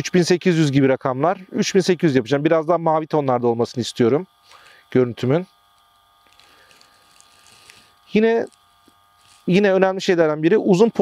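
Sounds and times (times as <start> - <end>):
faint buzzing hum: 0.0 - 11.0.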